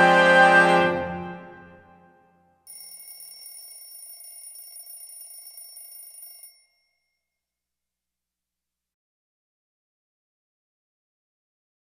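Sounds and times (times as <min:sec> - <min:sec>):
alarm clock bell ringing: 0:02.7 - 0:07.4.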